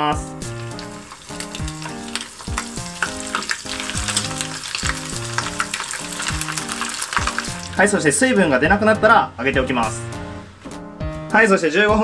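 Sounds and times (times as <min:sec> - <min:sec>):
deep-frying sizzle: 0:00.0 - 0:08.4
background music with beat: 0:00.0 - 0:12.0.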